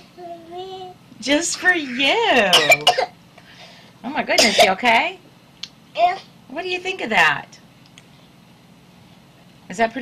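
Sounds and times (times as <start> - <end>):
toddler coughing: 2.4 - 3.1, 4.4 - 4.8.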